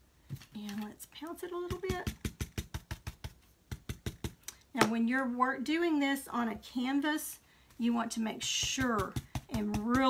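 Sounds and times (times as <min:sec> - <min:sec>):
foam pouncer tapping on paper: 0:01.6 - 0:04.4, 0:08.5 - 0:10.0.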